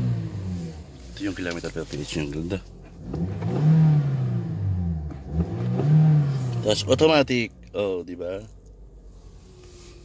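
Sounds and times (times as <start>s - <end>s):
car engine revving: 0.0s - 7.5s.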